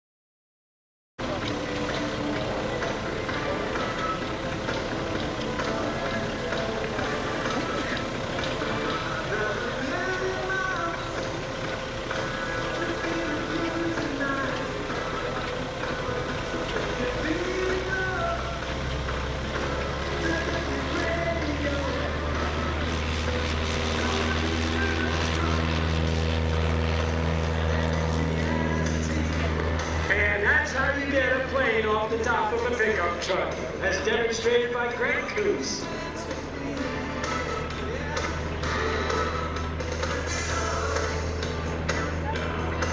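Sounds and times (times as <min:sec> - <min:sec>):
engines droning: 0:01.2 - 0:42.9
public-address music: 0:01.2 - 0:42.9
announcer speaking: 0:02.3 - 0:15.4, 0:30.1 - 0:36.1.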